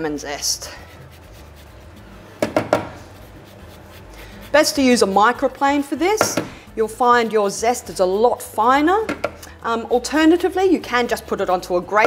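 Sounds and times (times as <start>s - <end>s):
lemon rind rasping on grater: 0.4s - 2.1s, 2.8s - 6.2s.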